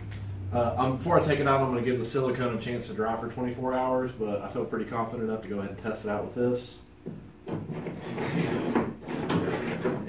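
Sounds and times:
plastic adapter scraping along rail: 7.5 - 10.0.

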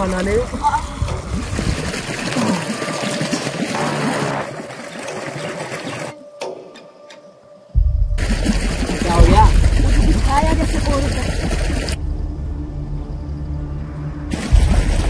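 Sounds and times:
river water splashing: 0.0 - 6.6, 8.2 - 12.0, 14.2 - 15.0
music: 2.3 - 15.0
loud low rumble: 7.8 - 15.0.

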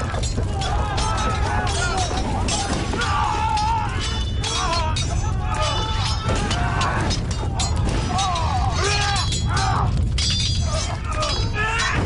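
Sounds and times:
crashes and breaking: 0.0 - 12.0
voices crying out: 0.0 - 12.0.

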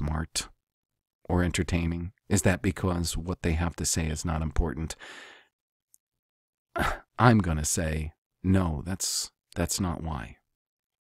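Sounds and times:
person speaking: 0.0 - 0.6, 6.8 - 10.4
person sighing: 6.8 - 7.1.

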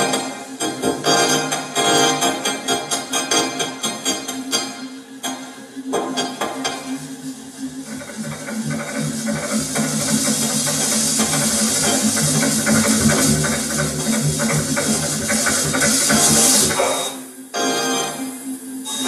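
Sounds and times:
low throbbing drone: 0.0 - 19.0
dense hissing noise: 6.6 - 19.0.

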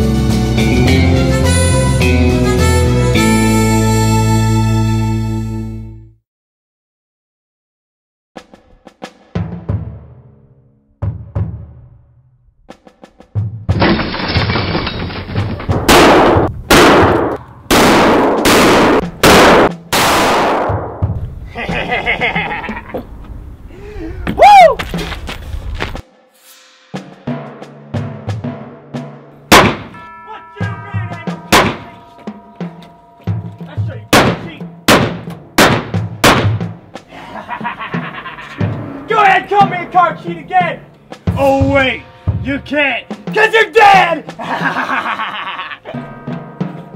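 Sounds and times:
gunshots echoing: 15.6 - 21.1, 29.5 - 30.0, 31.5 - 32.0, 34.1 - 36.8
revolver shots: 29.5 - 30.0.

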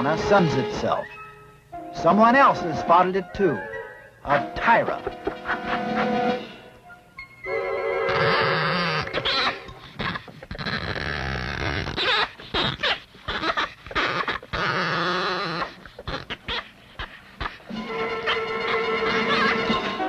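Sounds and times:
background music: 0.0 - 9.8, 17.7 - 20.0
harsh animal calls: 4.2 - 6.7, 7.5 - 20.0.

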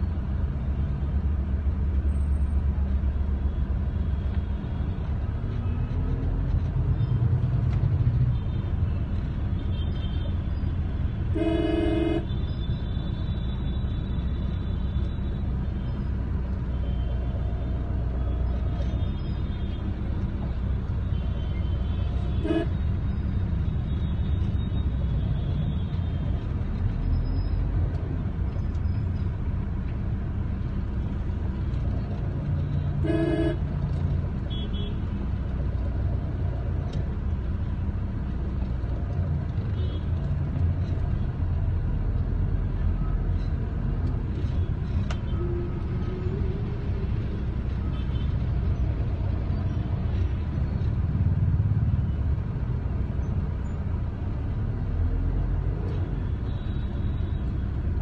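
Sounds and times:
vehicle driving rumble: 0.0 - 58.0
car horn toot: 11.3 - 12.3, 22.4 - 22.8, 33.0 - 33.6.

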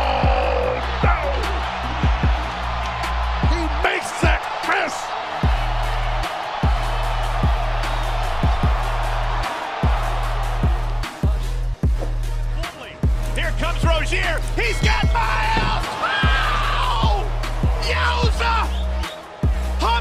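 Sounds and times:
music with heavy bass beat: 0.0 - 3.8, 5.4 - 20.0
arena crowd noise: 0.0 - 20.0.

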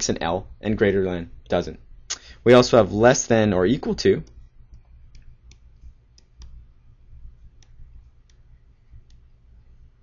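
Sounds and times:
low steady hum: 0.0 - 10.0
stylus tapping on screen: 4.2 - 6.7, 7.4 - 9.4.

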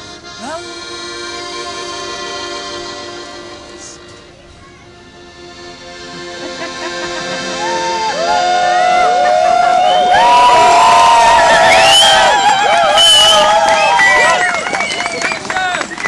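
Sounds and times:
accordion chord: 0.0 - 9.7
voices cheering and whooping: 7.4 - 15.6
people clapping: 8.2 - 16.0.

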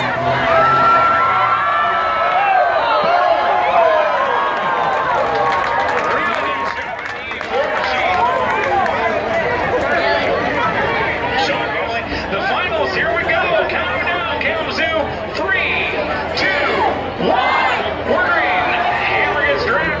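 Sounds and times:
crowd cheering and chattering: 0.0 - 20.0.

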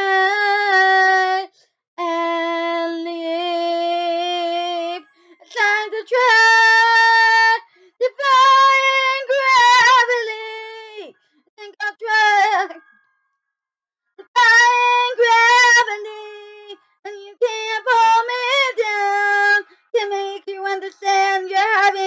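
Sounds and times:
girl singing with vibrato: 0.0 - 12.8, 14.2 - 22.0.

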